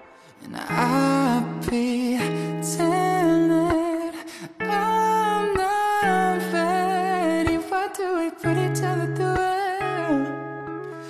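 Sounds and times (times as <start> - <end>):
strummed guitar: 0.0 - 11.0.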